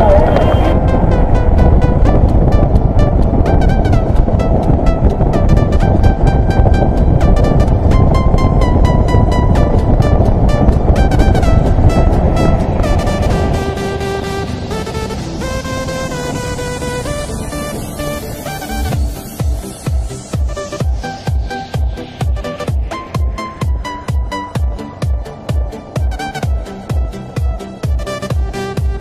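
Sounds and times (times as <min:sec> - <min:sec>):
background music with steady beat: 0:00.0 - 0:29.0
motorcycle rumble: 0:00.0 - 0:29.0
wind noise: 0:00.0 - 0:29.0.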